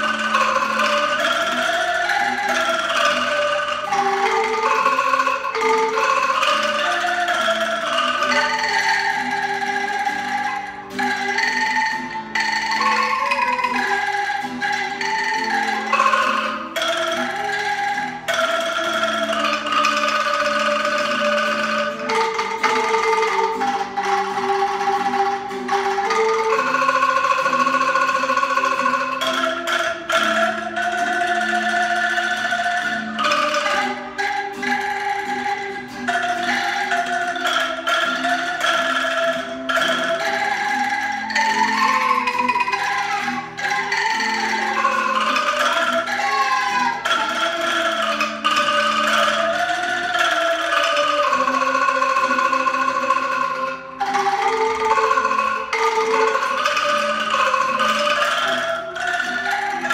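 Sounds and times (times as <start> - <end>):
angklung rattling chords: 0.0 - 59.9
sliding solo melody line: 0.0 - 59.9.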